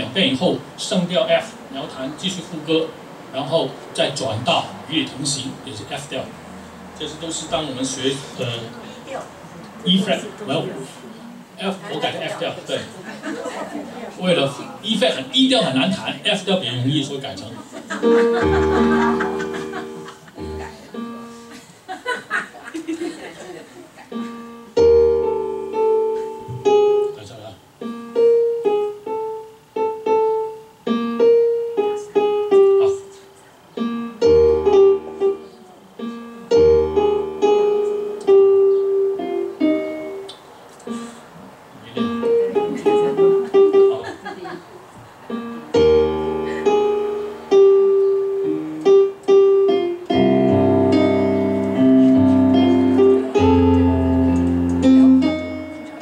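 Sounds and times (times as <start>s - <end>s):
electronic keyboard piano chords: 18.0s - 21.8s, 24.1s - 44.0s, 45.3s - 56.0s.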